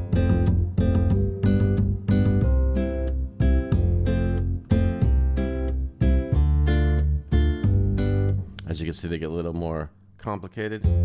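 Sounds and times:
plucked upright bass: 0.0 - 8.7.

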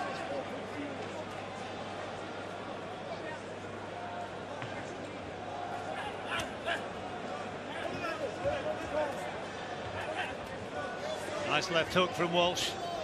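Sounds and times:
crowd shouts: 10.0 - 13.0.

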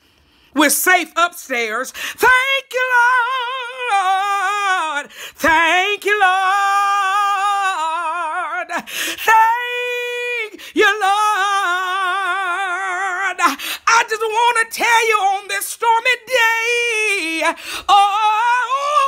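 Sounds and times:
woman singing unaccompanied: 0.6 - 19.0
singer breathing: 1.9 - 2.2, 5.0 - 5.4, 8.8 - 9.2, 13.5 - 13.9, 17.5 - 17.9.

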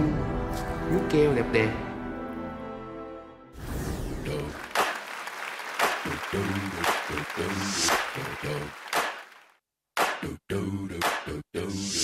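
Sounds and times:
audience applauding and cheering: 4.4 - 9.6.

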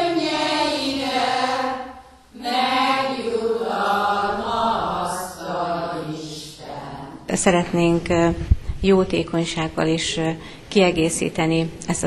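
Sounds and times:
group of voices chanting: 0.0 - 7.2.

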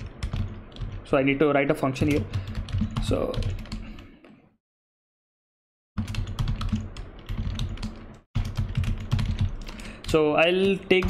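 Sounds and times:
typing on computer keyboard: 0.0 - 1.1, 2.0 - 4.1, 6.0 - 11.0.

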